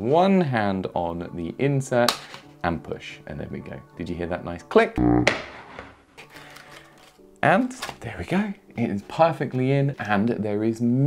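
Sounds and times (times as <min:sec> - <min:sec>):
card snapping into plastic pocket: 0:02.1 - 0:02.5, 0:06.2 - 0:08.0
brief low buzz: 0:05.0 - 0:05.5.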